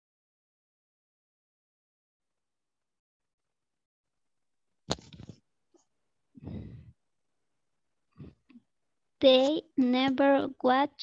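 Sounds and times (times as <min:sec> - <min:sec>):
person sighing: 0:06.4 - 0:07.0.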